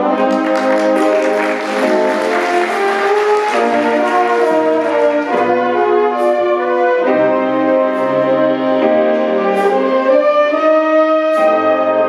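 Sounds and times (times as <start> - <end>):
jazz band playing chords: 0.0 - 12.0.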